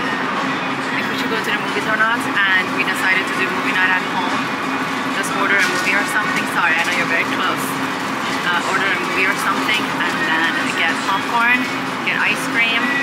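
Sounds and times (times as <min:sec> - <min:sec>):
general store noise: 0:00.0 - 0:13.0
indistinct voices: 0:00.0 - 0:13.0
steady hum: 0:00.0 - 0:13.0.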